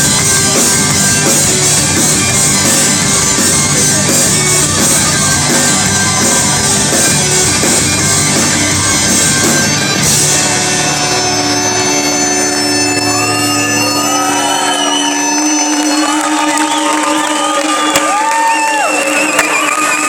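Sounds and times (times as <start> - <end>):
crowd shouting and cheering: 0.0 - 20.0
folk-rock band with bagpipes: 0.0 - 20.0.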